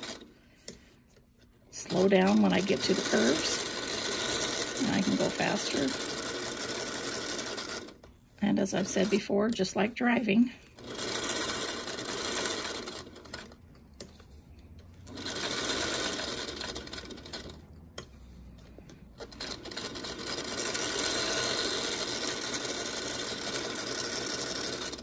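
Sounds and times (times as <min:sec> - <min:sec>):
sewing machine stitching: 0:00.0 - 0:00.3, 0:01.7 - 0:09.9, 0:10.5 - 0:14.2, 0:14.9 - 0:25.0.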